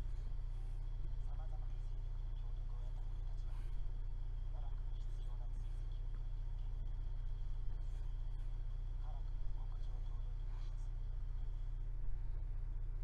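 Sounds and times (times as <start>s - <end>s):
faint high whine: 0.0s - 13.0s
low electrical hum: 0.0s - 13.0s
muffled voices: 0.0s - 13.0s.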